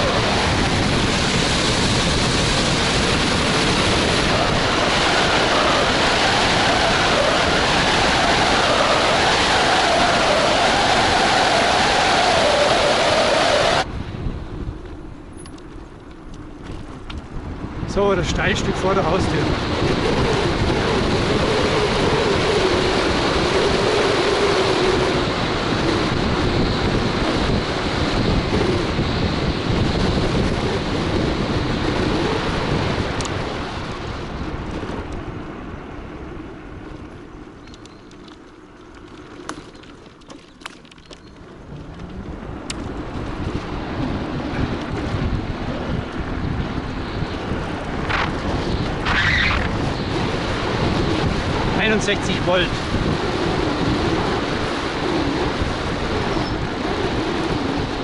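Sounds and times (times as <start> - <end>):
scooter road rush on asphalt: 0.0 - 58.0
wind buffeting microphone: 0.0 - 58.0.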